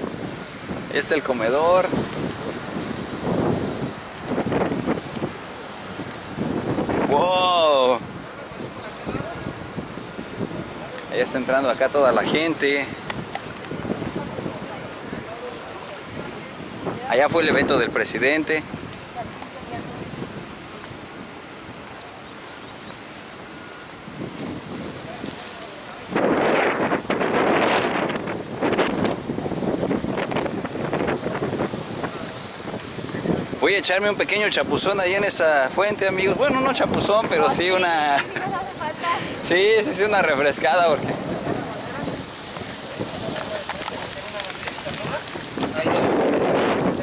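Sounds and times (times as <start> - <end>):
wind buffeting microphone: 0.0 - 47.0.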